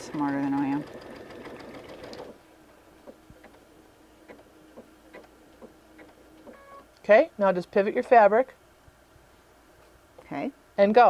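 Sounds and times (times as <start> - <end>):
sewing machine stitching: 0.0 - 2.4.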